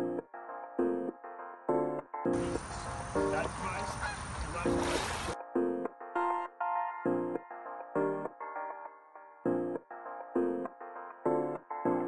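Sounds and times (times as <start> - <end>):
soft synth music: 0.0 - 12.0
pond water splashing: 2.4 - 5.4.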